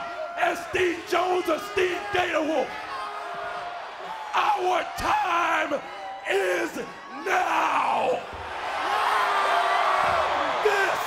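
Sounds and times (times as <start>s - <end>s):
man shouting into microphone: 0.0s - 2.8s, 4.3s - 8.3s, 10.5s - 11.0s
crowd cheering: 0.0s - 11.0s.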